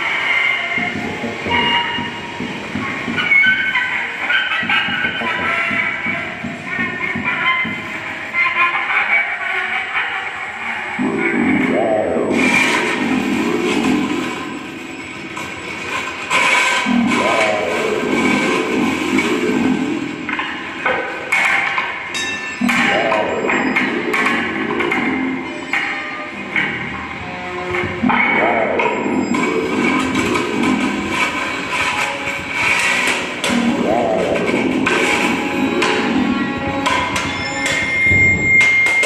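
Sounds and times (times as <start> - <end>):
scattered knocks: 0.7 - 8.1, 11.0 - 39.0
sliding pitched tones: 10.4 - 39.0
short ringing strikes: 22.1 - 24.7.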